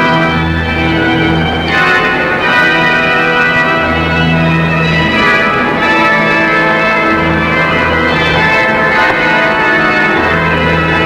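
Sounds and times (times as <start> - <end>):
organ playing held chords: 0.0 - 11.0.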